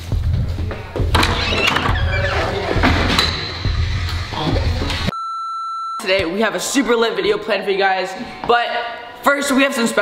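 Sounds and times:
steady electronic beep: 5.1 - 6.2.

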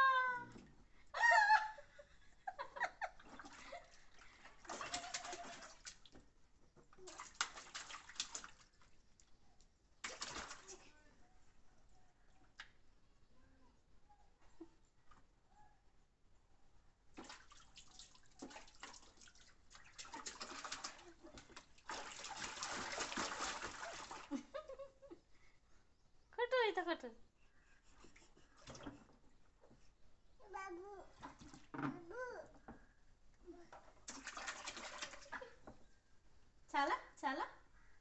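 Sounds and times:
child cooing: 0.0 - 0.6, 32.1 - 32.5
water splashing in a tub: 3.2 - 6.3, 7.0 - 9.4, 10.0 - 10.9, 17.1 - 24.6, 31.1 - 31.8, 34.0 - 35.7.

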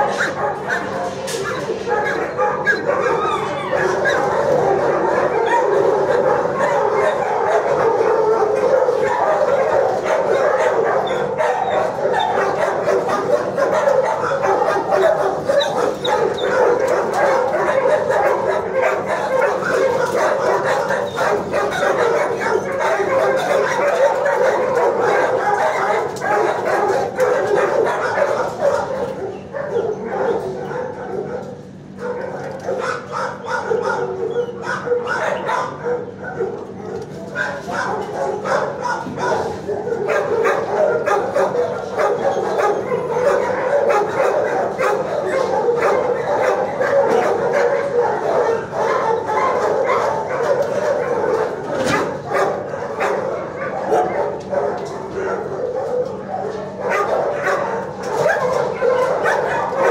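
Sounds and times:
many dogs barking and yipping: 0.0 - 59.9.

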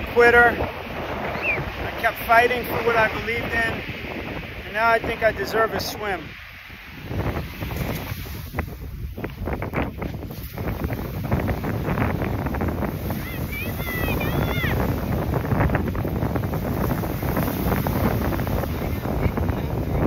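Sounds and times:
breaking surf: 0.0 - 20.0
wind buffeting microphone: 0.0 - 20.0.

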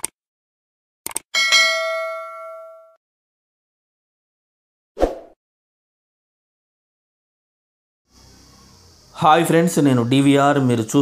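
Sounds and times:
bright bell ding: 1.4 - 3.0.

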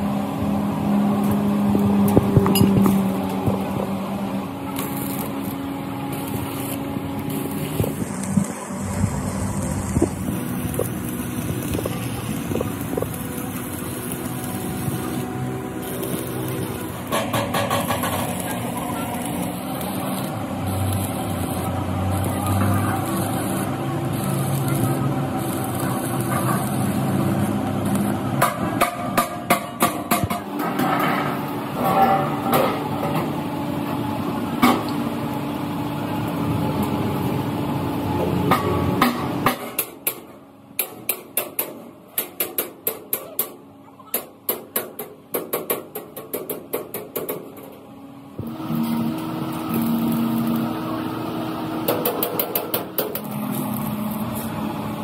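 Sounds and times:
steady machine hum: 0.0 - 40.8, 47.7 - 55.0
arc welding crackle: 0.0 - 43.2, 48.4 - 55.0.

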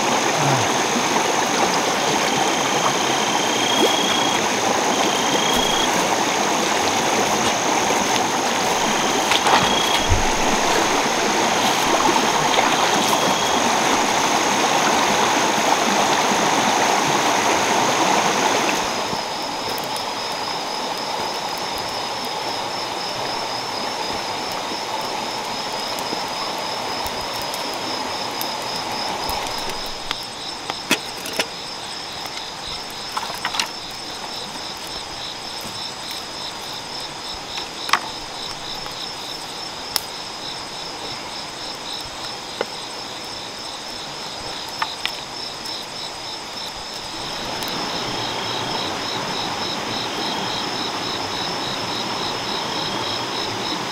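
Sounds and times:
constant rushing hiss: 0.0 - 53.9
insect chirps: 0.0 - 53.9
high-pitched insect buzz: 2.1 - 13.8.

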